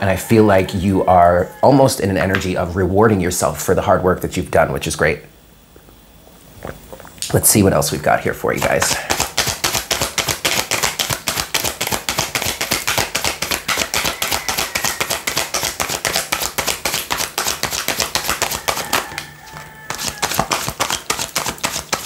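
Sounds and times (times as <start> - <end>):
cards being shuffled by hand: 8.5 - 22.0.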